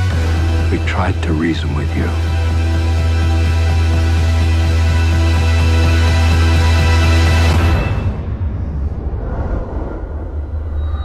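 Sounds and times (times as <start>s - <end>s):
deep cinematic bass drone: 0.0s - 11.0s.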